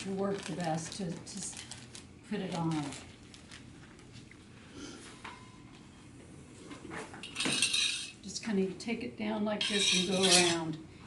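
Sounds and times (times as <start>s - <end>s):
metal spoon scraping ceramic bowl: 9.6s - 10.7s.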